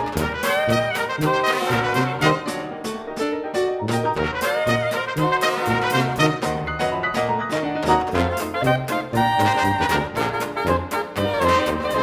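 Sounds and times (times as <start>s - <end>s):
brass playing punchy chords: 0.0s - 12.0s
pit orchestra music: 0.0s - 12.0s.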